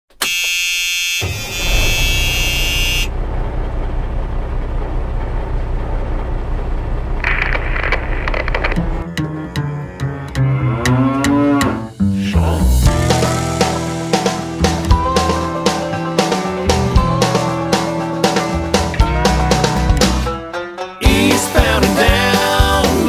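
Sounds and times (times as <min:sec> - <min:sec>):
loud horn blast: 0:00.2 - 0:03.2
tractor engine rumbling: 0:01.3 - 0:11.2
music with drum hits: 0:12.8 - 0:23.0.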